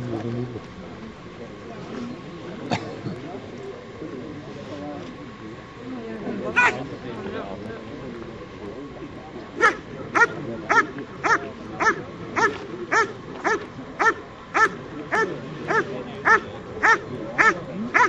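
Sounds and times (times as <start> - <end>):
dog barking: 9.6 - 18.0.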